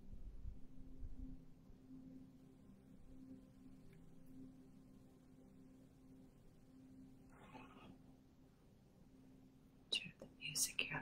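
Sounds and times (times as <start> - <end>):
faint steady hum: 0.0 - 11.0
woman whispering: 9.9 - 11.0.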